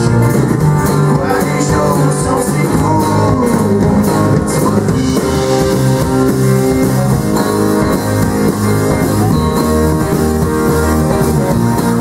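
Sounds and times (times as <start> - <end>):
live band guitars playing: 0.0 - 12.0.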